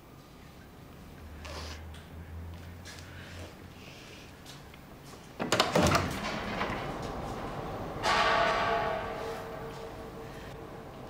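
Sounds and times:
wooden door opening: 5.3s - 9.1s
ringing bell-like tone: 7.6s - 11.0s.

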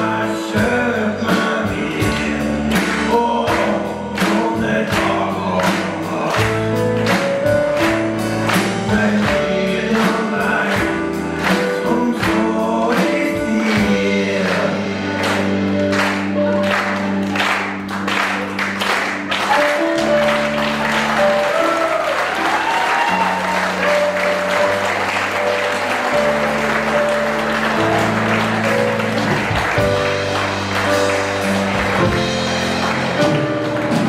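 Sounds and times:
music of held chords: 0.0s - 34.0s
audience applauding: 2.0s - 34.0s.

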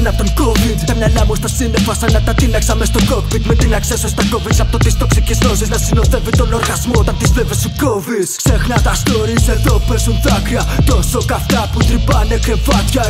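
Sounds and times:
heavy bass line: 0.0s - 13.0s
rapping over a beat: 0.0s - 13.0s.

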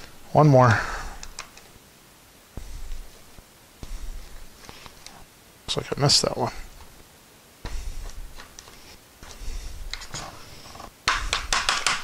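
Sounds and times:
sharp plastic clicks and knocks: 11.0s - 12.0s.

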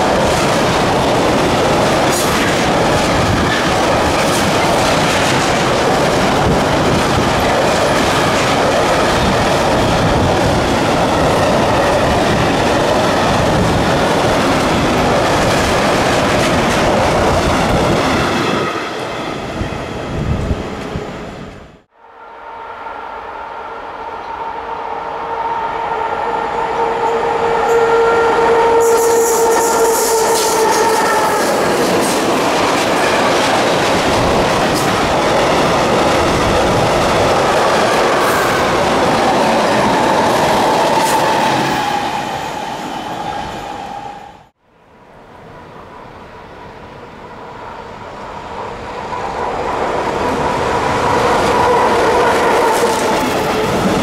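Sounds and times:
train rumbling and clattering: 0.0s - 21.9s, 26.8s - 44.6s, 47.2s - 54.0s
freight train rattling past: 0.0s - 44.5s, 45.3s - 54.0s
electric locomotive whine: 0.0s - 54.0s.

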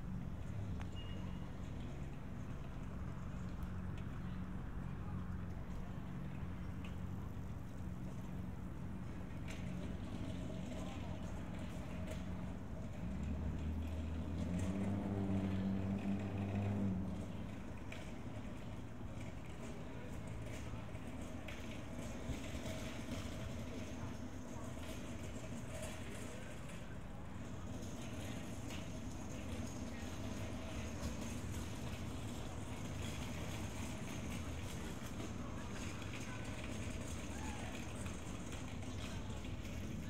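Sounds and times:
traffic rumble: 0.0s - 40.0s
vehicle engine humming: 0.0s - 40.0s
faint voices: 0.2s - 40.0s.

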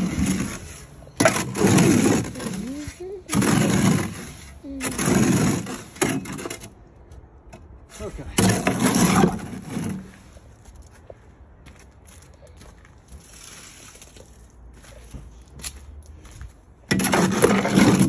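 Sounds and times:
shovel scraping wet cement: 0.0s - 6.8s, 7.9s - 10.4s, 16.9s - 18.0s.

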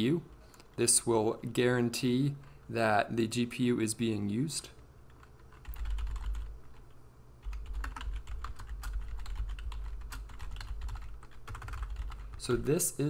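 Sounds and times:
typing on computer keyboard: 5.1s - 12.4s.

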